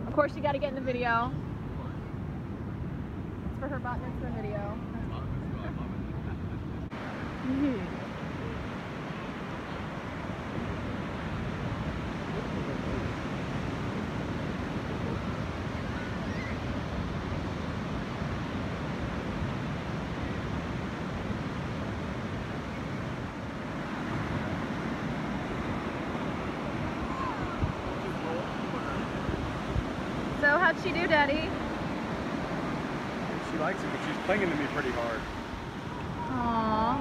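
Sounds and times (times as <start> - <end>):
surf breaking on beach: 0.0 - 37.0
wind buffeting microphone: 0.0 - 37.0.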